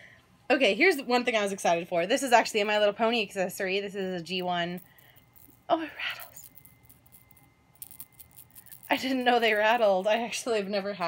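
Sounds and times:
plastic toy rattle shaken: 4.3 - 10.9.

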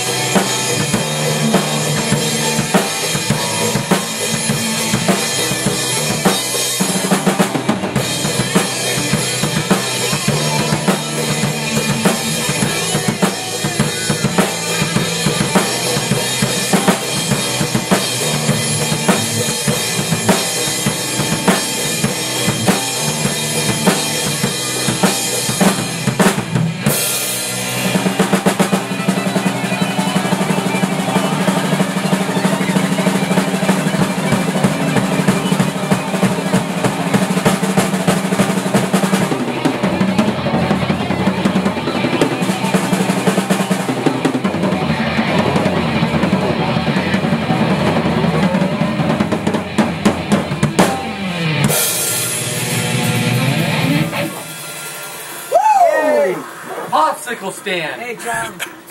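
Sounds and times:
drums: 0.0 - 58.9
rock band playing: 0.0 - 58.9.

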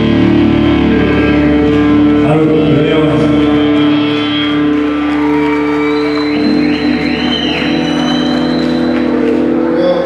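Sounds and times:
band playing droning tones: 0.0 - 10.0.

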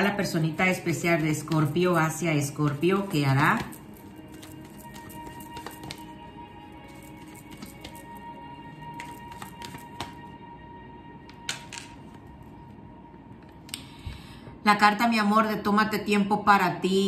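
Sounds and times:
soft background music: 0.0 - 17.0
cards being shuffled: 0.7 - 6.2, 6.8 - 8.2, 8.9 - 10.2, 11.4 - 12.2.

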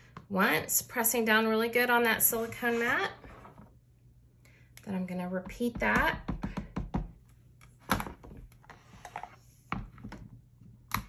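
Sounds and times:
plastic knocks and thunks: 5.5 - 7.2.

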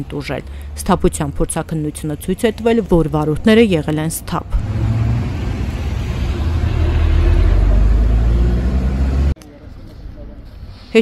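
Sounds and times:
vehicle engine rumbling: 0.0 - 10.8
street traffic: 0.0 - 11.0.

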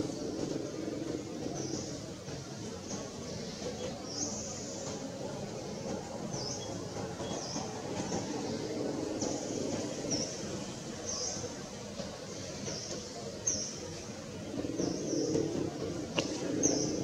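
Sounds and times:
birds chirping: 0.0 - 17.0.

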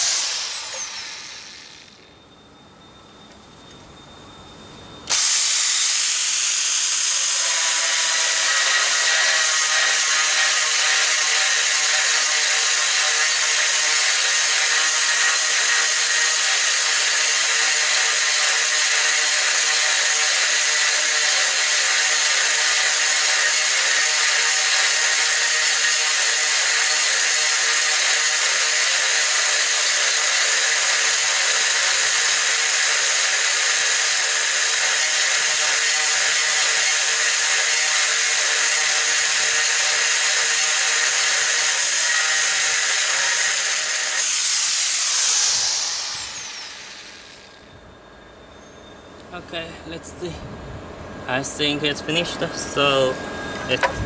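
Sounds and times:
angle grinder drilling tile: 0.0 - 2.1, 5.1 - 47.7
grinder spinning down: 0.0 - 2.1, 5.0 - 47.8.

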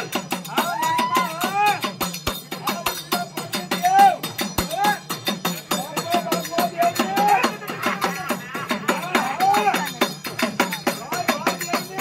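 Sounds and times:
metallic percussion strokes: 0.0 - 12.0.

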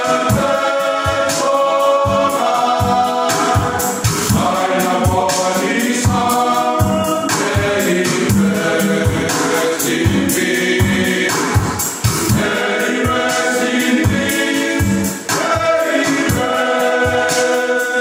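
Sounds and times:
men's choir singing a hymn: 0.0 - 18.0.

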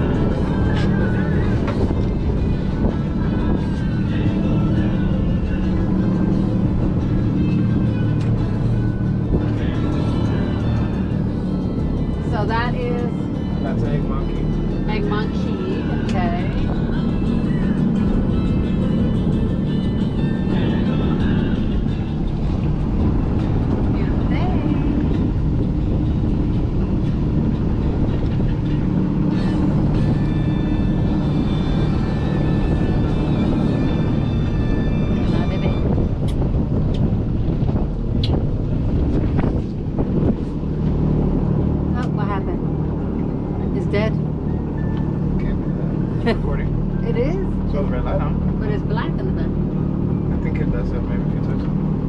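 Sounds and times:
motorboat engine drone: 0.0 - 52.0
water noise from hull: 0.0 - 52.0
wind rushing over microphone: 0.0 - 52.0.

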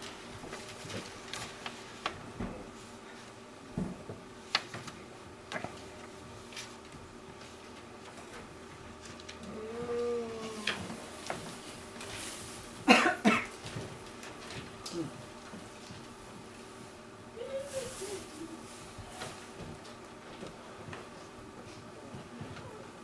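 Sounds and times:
short voiced hums: 9.4 - 11.0, 17.3 - 19.2
person coughing loudly: 12.9 - 13.5.

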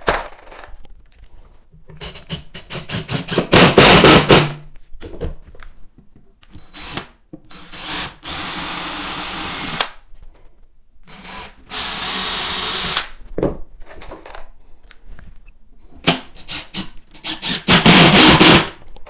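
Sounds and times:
drill whining: 6.7 - 9.9, 11.1 - 13.1, 16.4 - 18.7
impact driver hammering screw: 11.2 - 13.1, 16.1 - 18.8.

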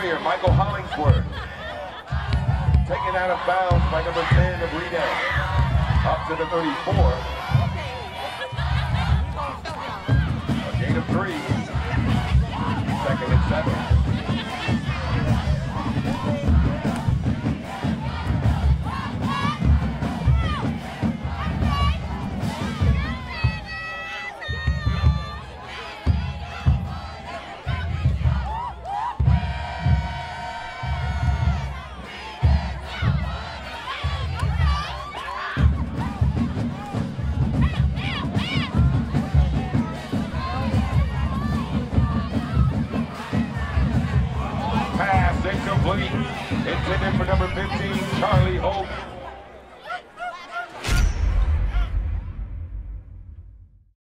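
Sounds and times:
marching band drums: 0.0 - 49.3
crowd shouting and chanting: 0.0 - 53.5.

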